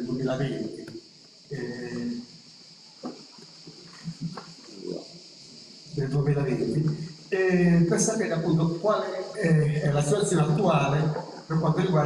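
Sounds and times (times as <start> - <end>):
sound system hiss: 0.0 - 12.0
microphone handling noise: 3.0 - 4.9.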